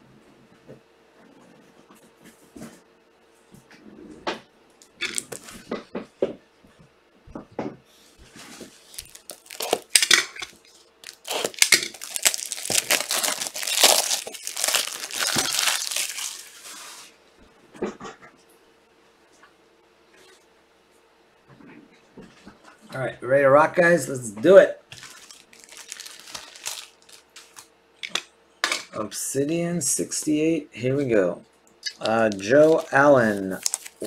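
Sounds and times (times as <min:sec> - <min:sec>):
plastic wrapping crinkling: 0:04.9 - 0:05.6, 0:08.6 - 0:17.1, 0:24.9 - 0:27.7, 0:31.8 - 0:34.0.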